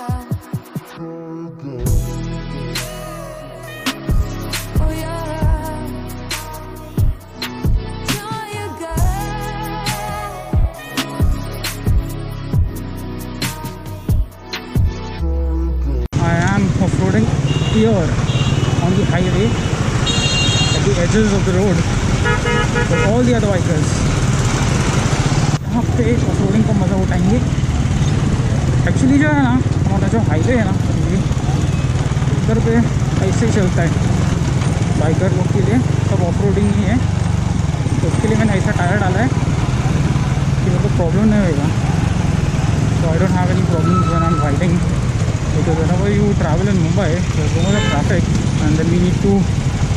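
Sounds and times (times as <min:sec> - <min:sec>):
background music: 0:00.0 - 0:17.4
motorcycle engines running: 0:16.2 - 0:49.9
vehicle horns honking: 0:17.4 - 0:21.1, 0:22.2 - 0:23.4, 0:43.7 - 0:44.6, 0:47.6 - 0:48.2.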